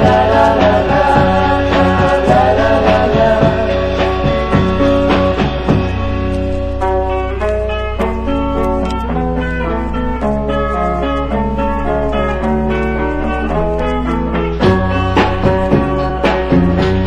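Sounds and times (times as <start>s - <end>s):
steady low bass: 0.0s - 13.8s
drums: 0.0s - 17.0s
electric lead guitar melody: 0.0s - 17.0s.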